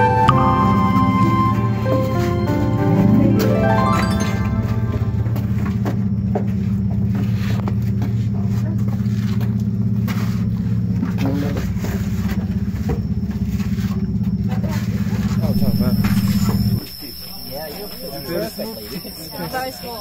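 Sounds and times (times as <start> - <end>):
low machine hum: 15.3 - 18.6.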